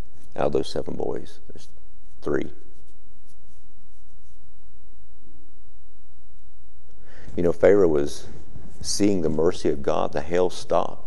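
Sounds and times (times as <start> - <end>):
faint soft rustles: 0.0 - 4.7, 7.0 - 9.8
steady low hum: 0.0 - 11.0.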